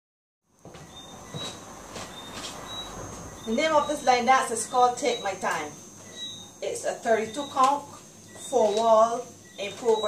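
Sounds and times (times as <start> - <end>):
footsteps on wooden floor: 0.6 - 3.3.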